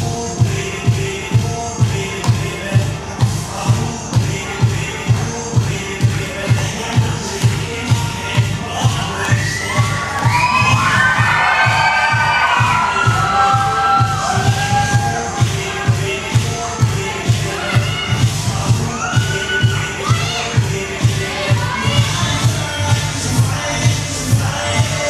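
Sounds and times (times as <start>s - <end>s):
dance music with thumping beat: 0.0s - 25.0s
young voices shouting and cheering: 8.0s - 25.0s.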